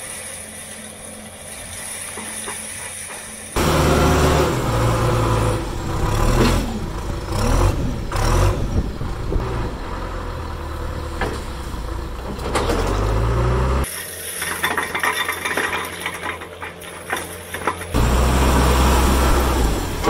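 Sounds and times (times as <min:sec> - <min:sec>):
backhoe diesel engine under load: 0:02.1 - 0:20.0
loader bucket pushing into stone: 0:12.2 - 0:19.7.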